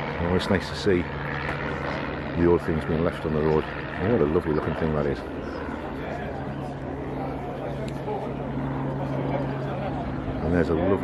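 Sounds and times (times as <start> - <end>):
people talking: 0.2 - 1.1, 2.4 - 11.0.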